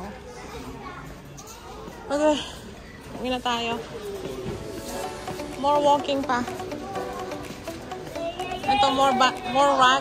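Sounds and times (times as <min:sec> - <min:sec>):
hubbub of indistinct voices: 0:00.0 - 0:10.0.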